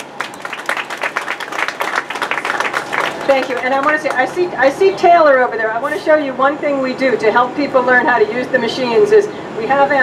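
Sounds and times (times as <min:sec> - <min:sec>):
group of people applauding: 0:00.0 - 0:04.5.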